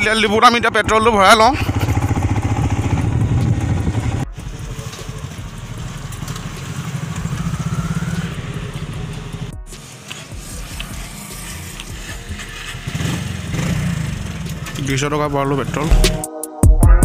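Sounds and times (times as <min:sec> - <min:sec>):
motorcycle engine running: 0:00.0 - 0:16.1.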